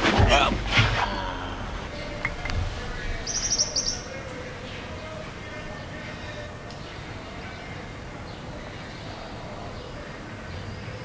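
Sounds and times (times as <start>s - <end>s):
small bird chirping: 1.9s - 10.0s.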